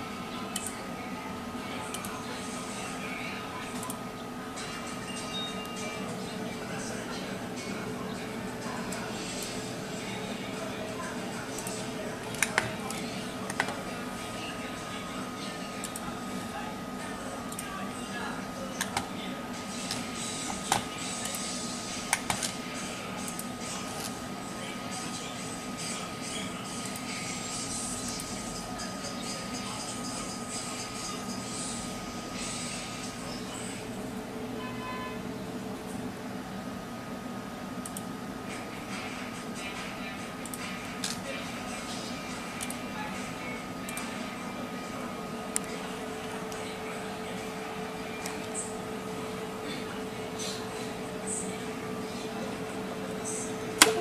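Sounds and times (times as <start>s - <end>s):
faint speech: 0.0s - 36.2s, 38.5s - 54.0s
faint indistinct voices: 0.0s - 54.0s
thin steady whine: 0.0s - 54.0s.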